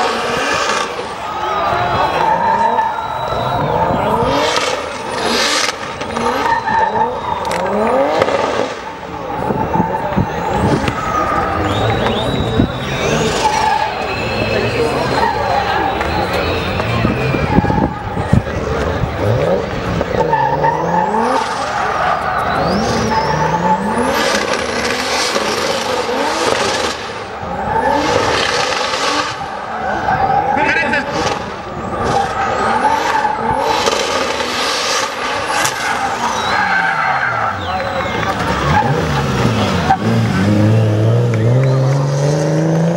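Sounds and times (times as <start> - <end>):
car engine revving: 0.0 - 42.9
tyres skidding and squealing: 0.0 - 42.9.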